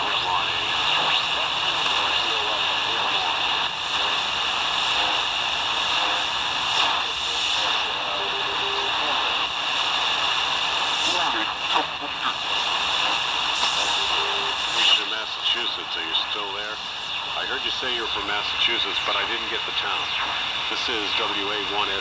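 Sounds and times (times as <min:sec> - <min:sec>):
weak radio voice under noise: 0:00.0 - 0:05.2, 0:05.8 - 0:22.0
shortwave radio static and hiss: 0:00.0 - 0:22.0.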